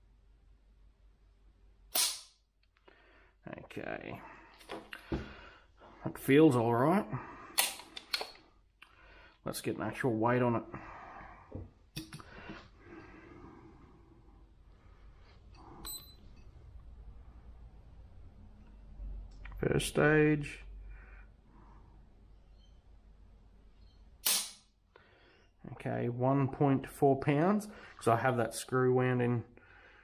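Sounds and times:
sharp metallic trigger snap: 1.9s - 2.4s, 24.2s - 24.6s.

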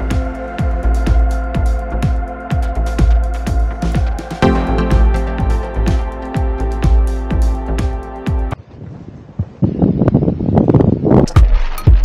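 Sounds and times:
wind buffeting microphone: 8.6s - 11.5s.

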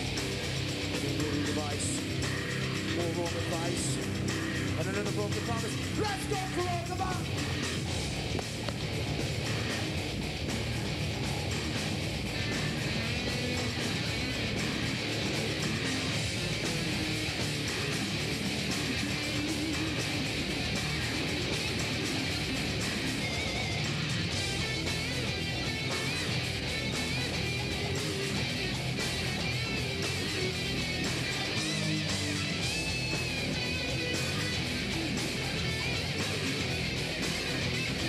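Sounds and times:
bass guitar: 0.0s - 38.0s
distorted electric guitar: 0.0s - 38.0s.

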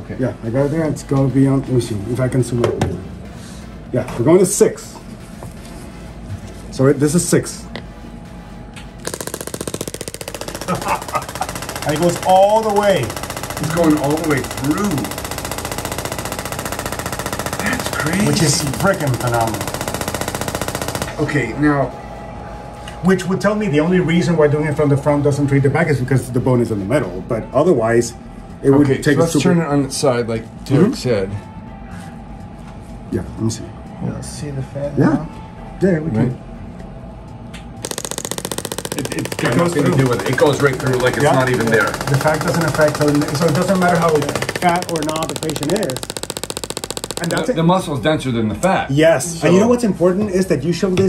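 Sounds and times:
rapid sharp clicks of handpiece: 9.0s - 21.2s, 37.8s - 47.6s
rapid train of sharp clicks: 37.8s - 47.5s.

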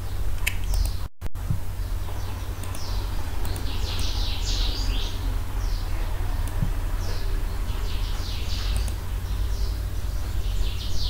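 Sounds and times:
small birds chirping: 0.0s - 11.0s
steady low hum: 0.0s - 11.0s.

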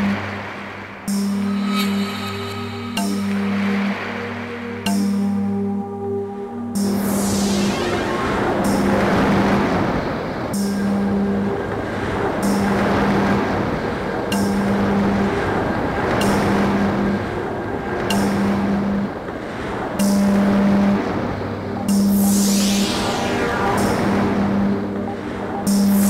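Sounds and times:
pulsing low electronic tone: 0.0s - 15.5s, 20.0s - 26.0s
rumbling noise wash: 0.0s - 26.0s.

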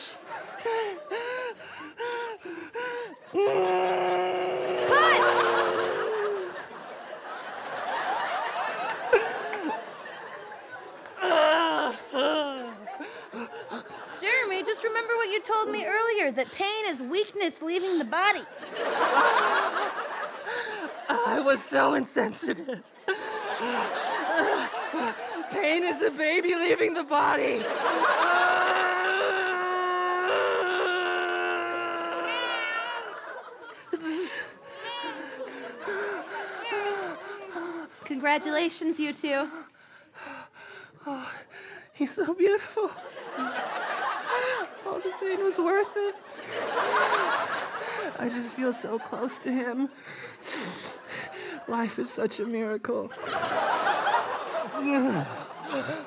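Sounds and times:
man groaning while straining: 3.3s - 6.6s, 28.4s - 33.0s
person screaming: 3.4s - 6.6s, 28.2s - 33.1s
studio audience laughter: 4.7s - 11.2s, 18.5s - 29.7s, 32.2s - 37.7s, 42.9s - 48.4s, 53.1s - 56.0s.

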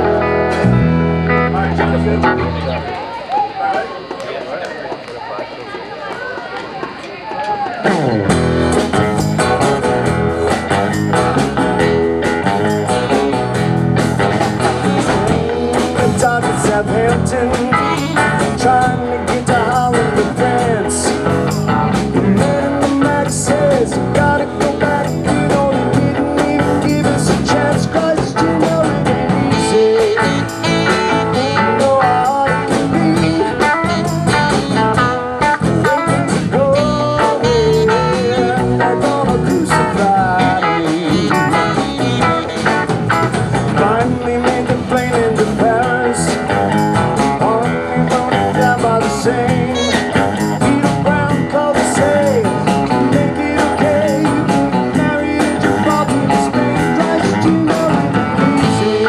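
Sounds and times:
live rock band playing: 0.0s - 3.6s, 7.6s - 59.0s
acoustic guitar strumming: 7.8s - 59.0s.

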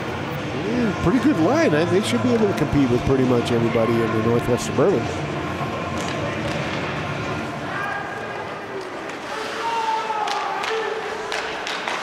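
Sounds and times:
hockey sticks and puck clacking: 5.9s - 7.2s, 7.9s - 12.0s
skates on ice: 7.8s - 12.0s.

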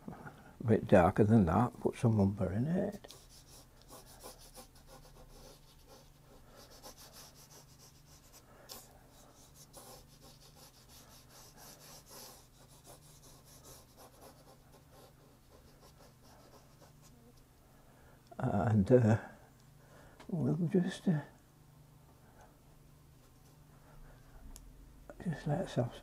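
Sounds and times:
low steady hum: 0.0s - 26.0s
brush scratching on paper: 2.9s - 17.4s.

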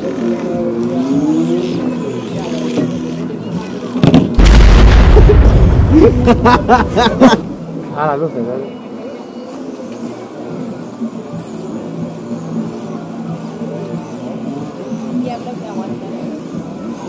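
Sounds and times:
people talking: 12.5s - 17.0s.

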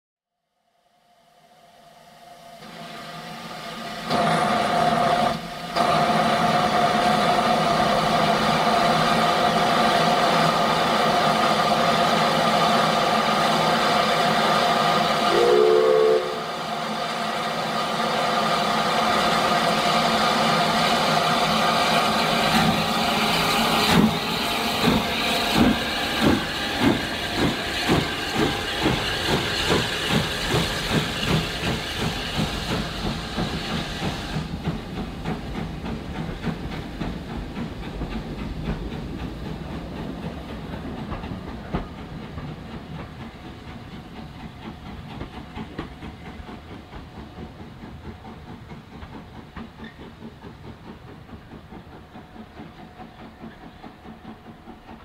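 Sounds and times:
hiss of escaping steam: 2.6s - 39.8s
steam whistle blast: 15.3s - 16.8s.

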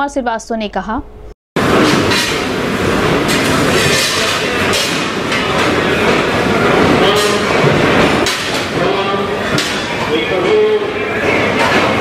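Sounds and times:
train wheels on rails: 1.6s - 12.0s.

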